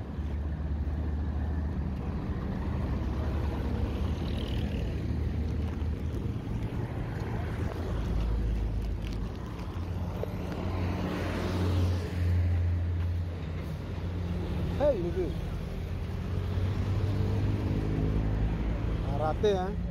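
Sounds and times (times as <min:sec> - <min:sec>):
road traffic rumble: 0:00.0 - 0:19.9.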